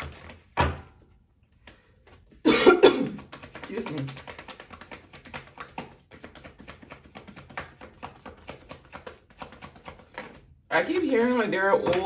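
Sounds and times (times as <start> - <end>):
cards being shuffled: 0.0 - 0.8, 1.5 - 2.4, 3.2 - 12.0
loud cough: 2.4 - 3.2.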